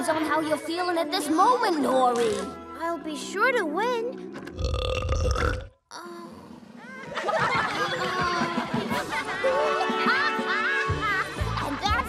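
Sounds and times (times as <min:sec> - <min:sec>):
cartoon fart sound: 0:02.1 - 0:02.6, 0:04.4 - 0:05.7.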